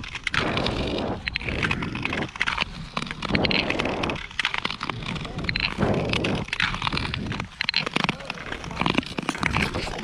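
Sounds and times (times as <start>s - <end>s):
skate blades scraping on ice: 0.0s - 10.0s.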